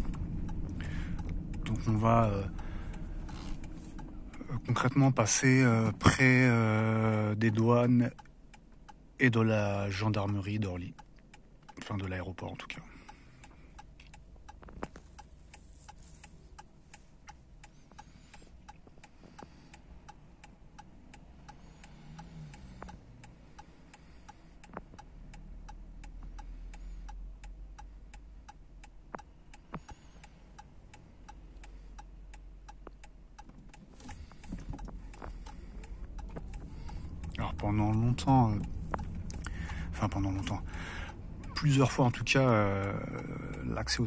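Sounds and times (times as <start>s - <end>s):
low cabin rumble: 0.0s - 7.8s
turn signal ticking: 0.0s - 44.0s.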